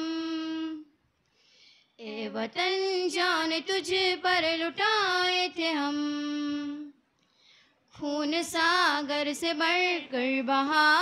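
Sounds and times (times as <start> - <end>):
girls singing in unison: 2.0 - 7.0.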